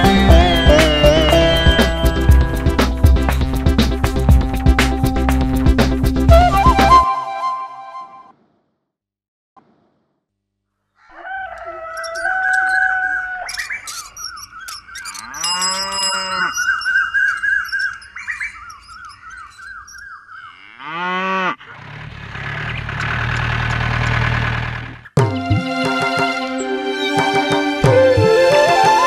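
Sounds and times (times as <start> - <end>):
birds chirping: 0.0 - 4.6, 10.9 - 21.7
cow mooing: 15.1 - 16.7, 20.5 - 22.1
vehicle engine rumble: 21.7 - 25.2.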